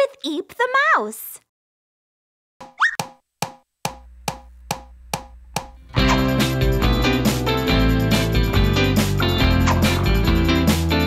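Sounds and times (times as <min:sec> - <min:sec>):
short rising squeak: 0:02.8 - 0:03.0.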